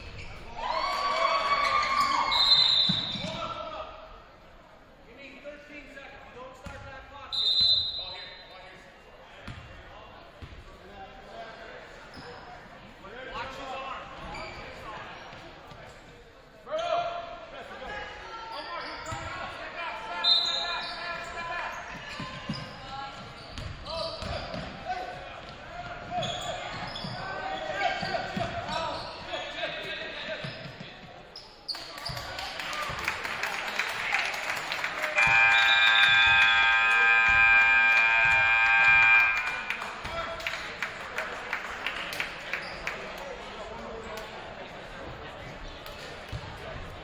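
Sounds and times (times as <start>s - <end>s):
basketball bouncing on gym floor: 9.4s - 9.7s
crowd voices: 32.9s - 47.0s
scoreboard buzzer: 35.2s - 39.8s.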